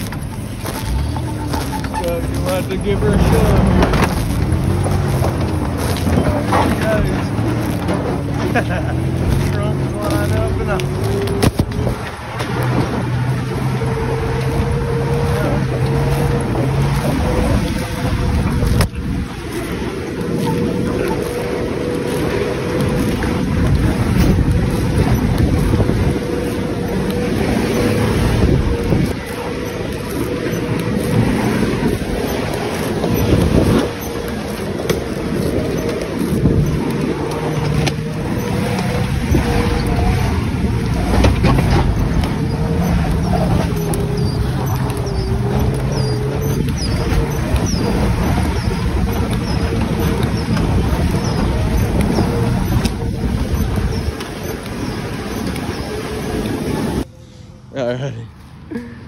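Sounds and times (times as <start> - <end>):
wind buffeting microphone: 0.0 - 57.6
car engine under load: 0.0 - 59.0.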